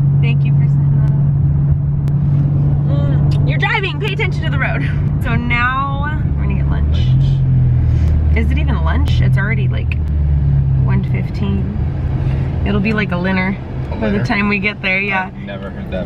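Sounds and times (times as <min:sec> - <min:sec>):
car cabin engine and road drone: 0:00.0 - 0:16.0.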